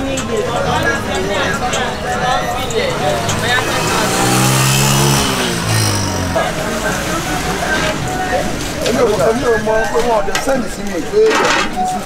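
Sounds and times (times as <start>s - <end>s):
vehicle passing by: 0.0s - 9.4s.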